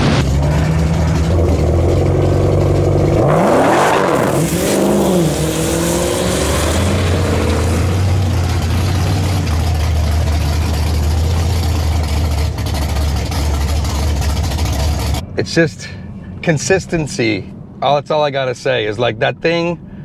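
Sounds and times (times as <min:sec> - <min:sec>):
car engine rumbling: 0:00.0 - 0:20.0.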